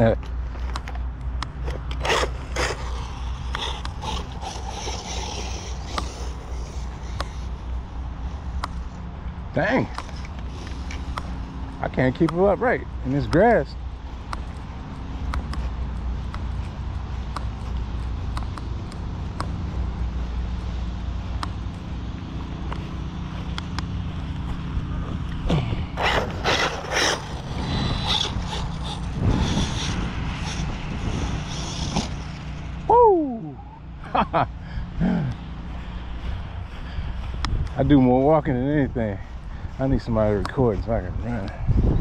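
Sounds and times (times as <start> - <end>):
rc buggy running on grass: 1.6 - 7.8, 9.5 - 34.4, 36.1 - 42.0
wind rumble on microphone: 24.1 - 42.0.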